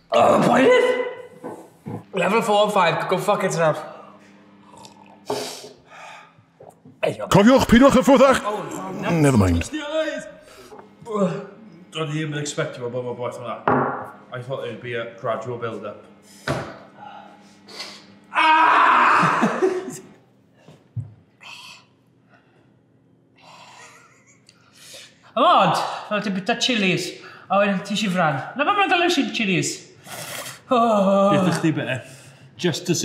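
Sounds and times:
man sharp breath: 0:05.3 - 0:06.4.

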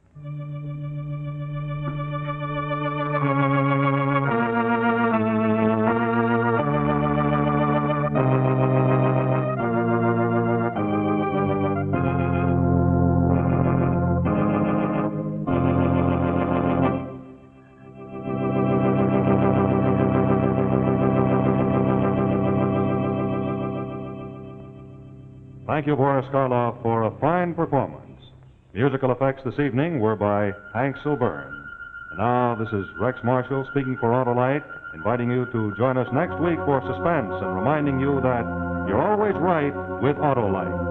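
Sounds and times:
organ chords: 0:00.0 - 0:40.9.

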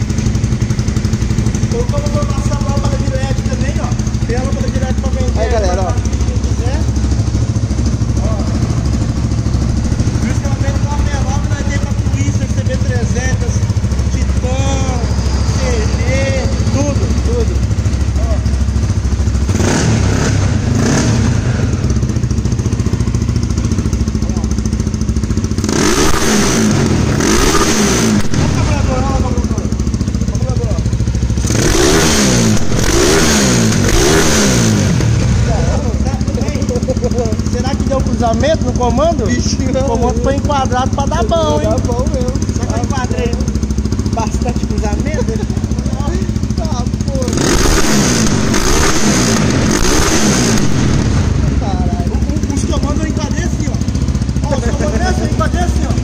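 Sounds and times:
motorcycle engine idling and revving: 0:00.0 - 0:56.0.

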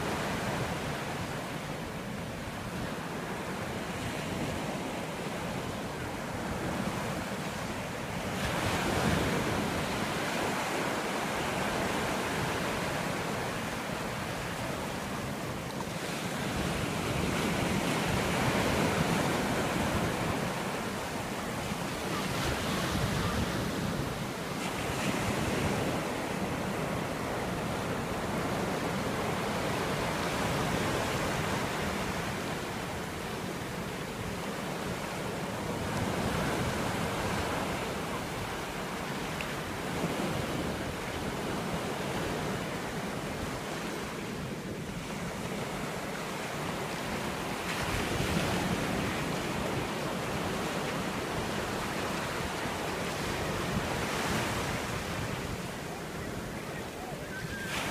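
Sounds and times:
ocean surf breaking on shore: 0:00.0 - 0:57.9.

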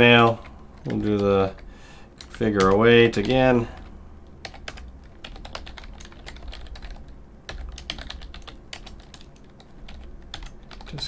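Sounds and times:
computer keyboard typing: 0:00.1 - 0:11.0.

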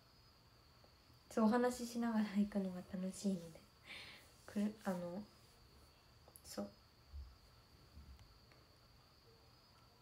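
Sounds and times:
faint high-pitched tone: 0:04.5 - 0:10.0.

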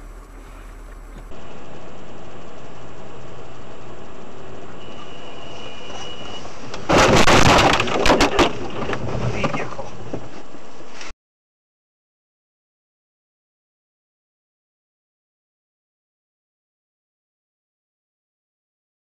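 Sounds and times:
road noise: 0:00.0 - 0:11.1
car collision crash: 0:04.9 - 0:10.4.

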